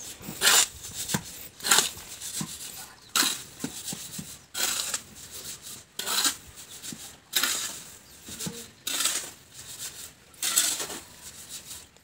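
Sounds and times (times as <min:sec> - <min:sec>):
shovel scraping mortar: 0:00.0 - 0:12.0.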